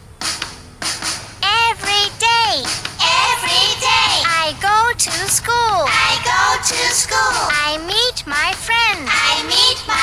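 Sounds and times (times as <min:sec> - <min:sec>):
girl singing: 0:01.4 - 0:10.0.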